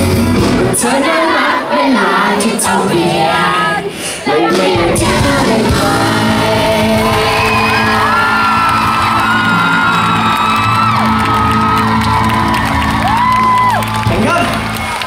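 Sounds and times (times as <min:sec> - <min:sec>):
pop band holding a chord: 0:00.0 - 0:14.7
fans screaming and whooping: 0:06.8 - 0:15.0.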